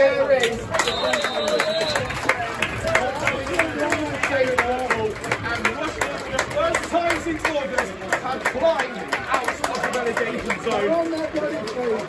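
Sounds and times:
crowd clapping in rhythm: 0:00.3 - 0:12.0.

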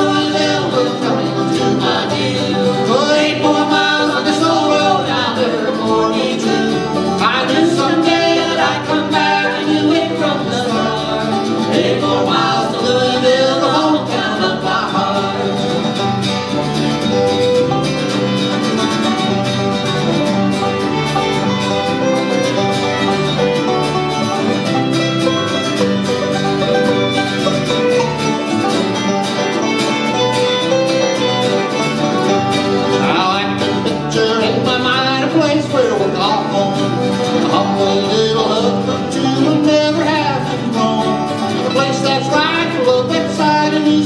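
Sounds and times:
person singing: 0:00.0 - 0:16.2, 0:32.8 - 0:44.0
bluegrass band playing: 0:00.0 - 0:44.0.

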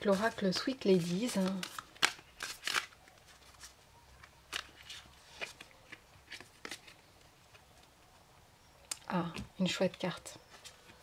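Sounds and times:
cards shuffling flicks: 0:00.0 - 0:03.7.

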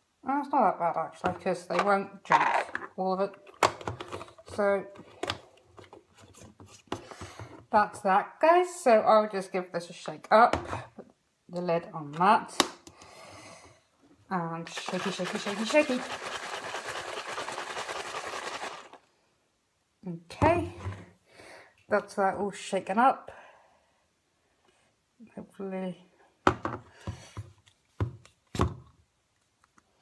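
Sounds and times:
liquid sloshing in plastic cups: 0:14.7 - 0:19.0
plastic cups rattling: 0:14.7 - 0:19.0.

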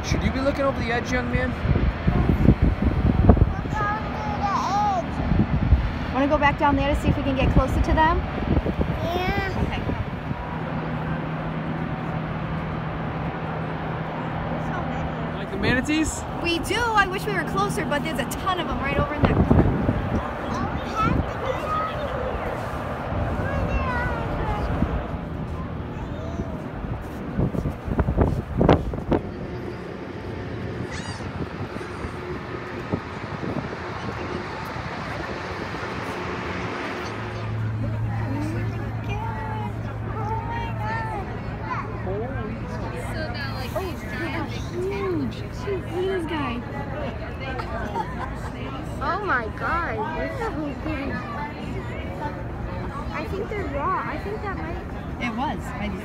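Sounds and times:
low mechanical hum: 0:00.0 - 0:56.0
outdoor background noise: 0:00.0 - 0:56.0
faint indistinct voices: 0:01.7 - 0:56.0.

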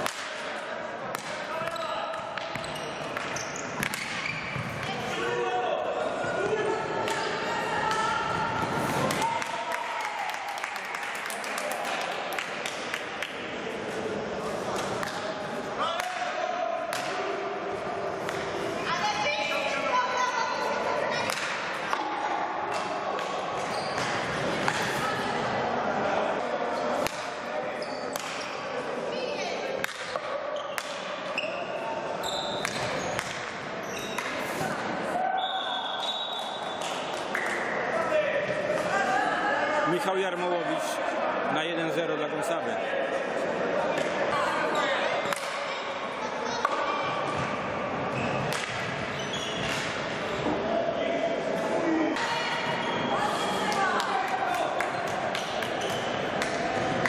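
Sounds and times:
hockey sticks striking ball: 0:00.0 - 0:04.9, 0:21.2 - 0:22.1.

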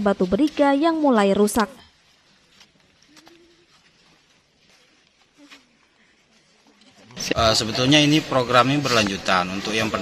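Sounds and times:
faint outdoor ambience: 0:00.0 - 0:10.0.

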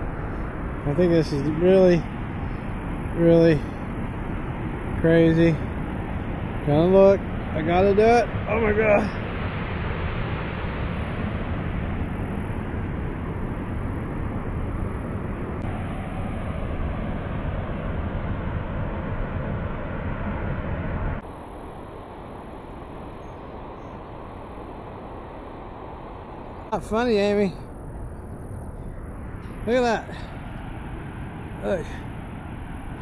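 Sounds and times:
wind buffeting microphone: 0:00.0 - 0:21.2.

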